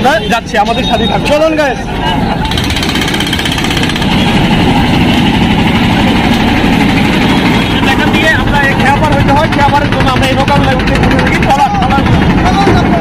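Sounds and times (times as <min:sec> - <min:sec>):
engine running steadily: 0:01.4 - 0:13.0.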